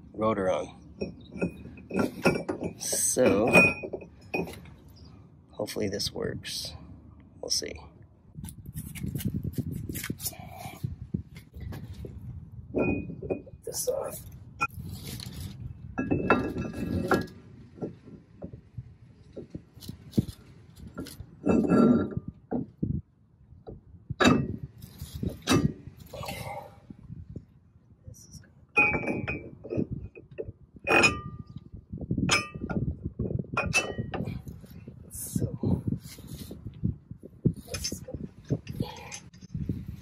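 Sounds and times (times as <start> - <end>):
metal clinks and clangs: 1.0 - 4.8, 28.8 - 29.9, 33.6 - 34.6, 37.6 - 39.5.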